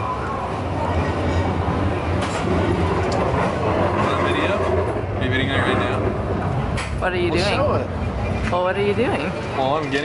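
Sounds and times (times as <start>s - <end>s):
tram rumbling on rails: 0.0s - 9.9s.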